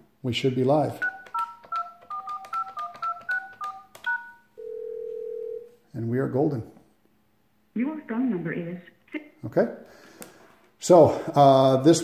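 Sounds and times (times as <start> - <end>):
phone key clicks: 1.0 - 4.3
touch-tone keypad beeps: 1.0 - 4.8
steady phone tone: 1.0 - 5.7.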